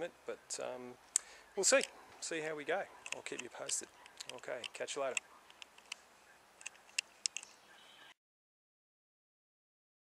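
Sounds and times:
camera handling clicks: 6.6 - 7.5.

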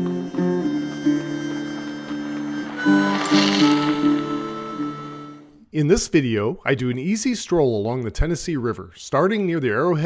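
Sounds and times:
music with held notes: 0.0 - 5.4.

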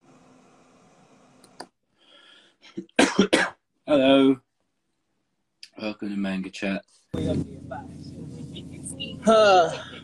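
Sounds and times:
faint voices: 7.2 - 10.0
subway train rumble: 7.2 - 10.0.

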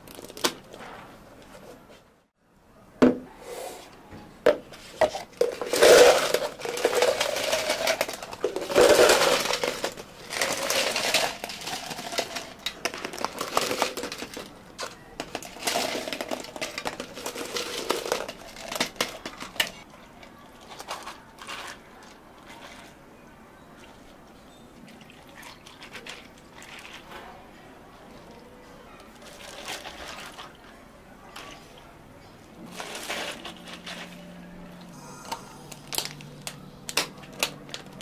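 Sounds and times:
ice cubes clattering into cups: 0.0 - 0.8, 5.0 - 23.0, 24.9 - 27.2, 29.0 - 30.7, 31.3 - 31.8, 32.6 - 34.4, 35.3 - 38.0.

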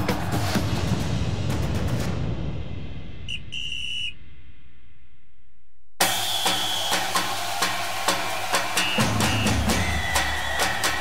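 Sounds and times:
whistle blasts: 3.3 - 4.2, 6.0 - 7.4, 8.2 - 11.0.

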